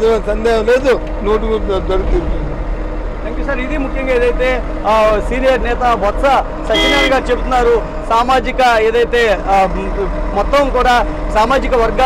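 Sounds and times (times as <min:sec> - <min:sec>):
steady low rumble: 0:00.1 - 0:10.3
man speaking: 0:03.3 - 0:12.0.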